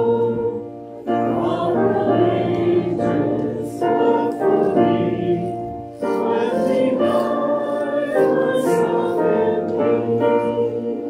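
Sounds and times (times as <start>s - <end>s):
congregation singing a hymn: 0.0s - 11.0s
piano accompaniment: 0.0s - 11.0s.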